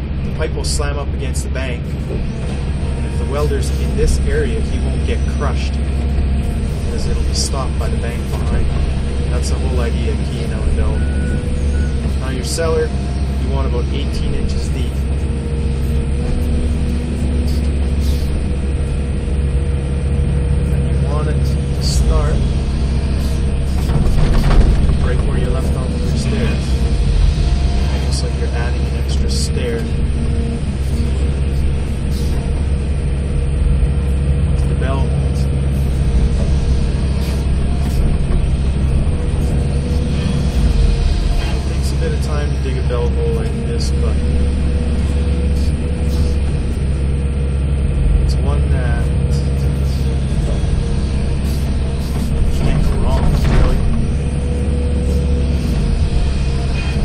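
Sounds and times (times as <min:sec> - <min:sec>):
excavator diesel engine: 0:00.0 - 0:57.0
hydraulic whine: 0:00.0 - 0:57.0.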